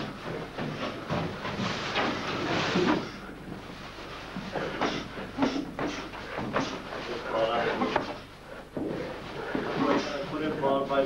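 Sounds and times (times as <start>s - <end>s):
voices in a gym: 2.4s - 11.0s.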